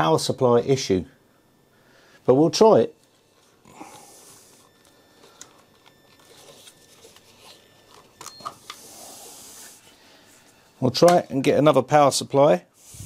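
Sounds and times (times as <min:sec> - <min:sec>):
rustling of cables: 0:03.0 - 0:08.9.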